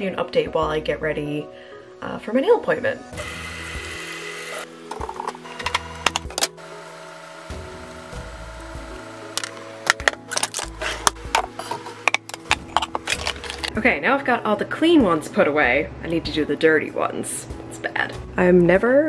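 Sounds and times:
background music with held notes: 0:00.0 - 0:19.0.

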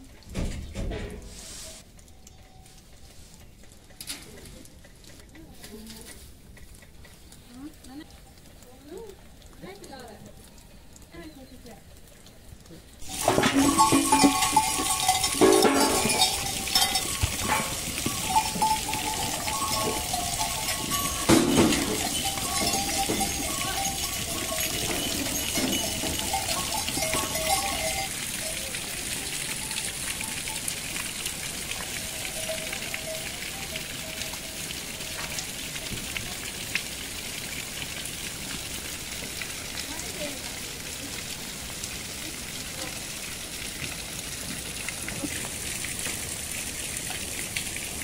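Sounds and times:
hiss of rain: 0:00.0 - 0:48.0
goat bells clanking: 0:01.0 - 0:03.1, 0:13.0 - 0:36.5.

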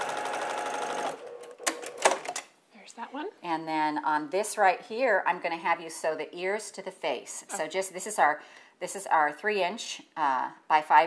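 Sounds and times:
sewing machine stitching: 0:00.0 - 0:02.4.

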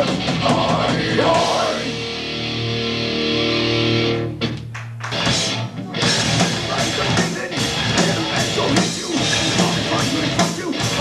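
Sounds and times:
distorted electric guitar and bass chord: 0:00.0 - 0:11.0
hardcore band playing: 0:00.0 - 0:11.0
drum hits: 0:05.0 - 0:11.0.

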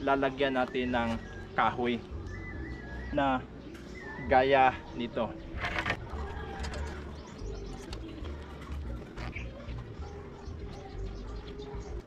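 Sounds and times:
bird calling: 0:00.0 - 0:08.0.

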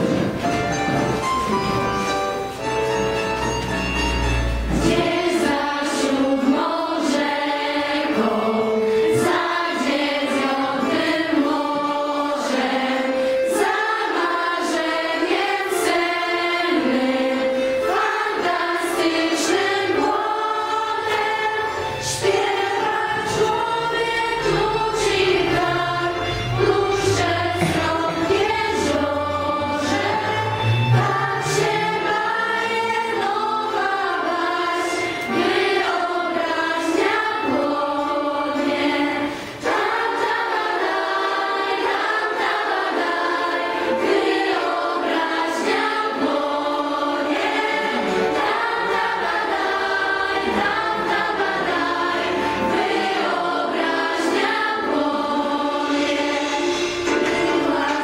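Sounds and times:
girls singing together: 0:04.7 - 0:58.0.

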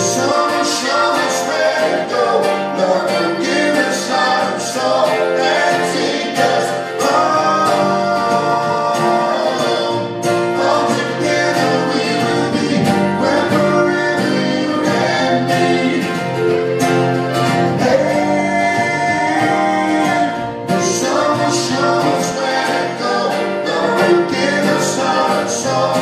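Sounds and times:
man singing into a microphone: 0:00.0 - 0:16.5, 0:17.8 - 0:26.0
strummed acoustic string instruments: 0:00.0 - 0:26.0.

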